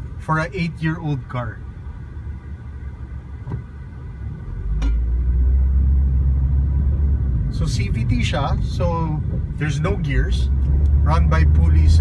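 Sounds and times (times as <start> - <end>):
car road and engine rumble: 0.0 - 12.0.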